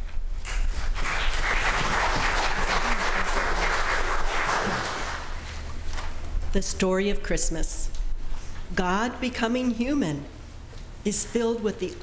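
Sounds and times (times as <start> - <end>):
audience applauding: 0.5 - 5.4.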